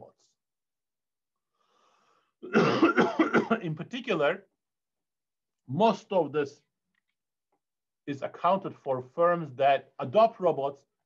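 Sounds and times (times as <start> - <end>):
man coughing: 2.4 - 3.8.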